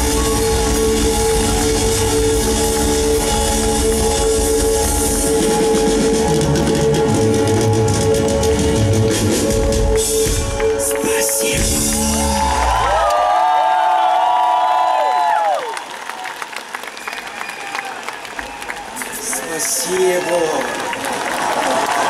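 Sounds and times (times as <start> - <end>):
live rock band playing: 0.0 - 12.8
crowd cheering and clapping: 0.0 - 22.0.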